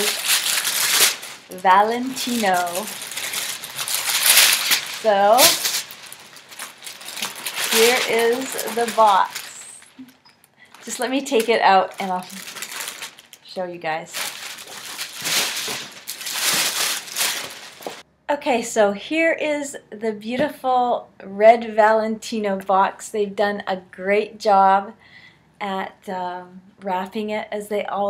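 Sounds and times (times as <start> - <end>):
tissue paper rustling: 0.0 - 10.1, 10.7 - 18.0.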